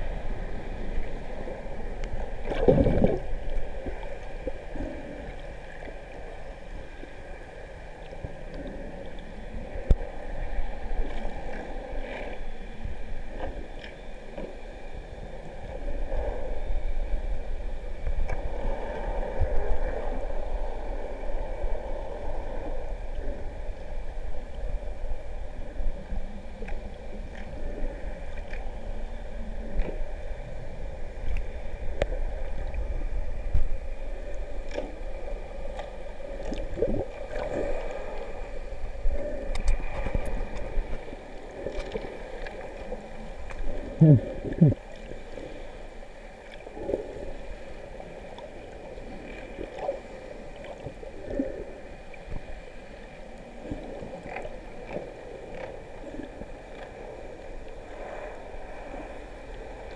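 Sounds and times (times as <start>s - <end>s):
muffled underwater rumble: 0.0s - 59.9s.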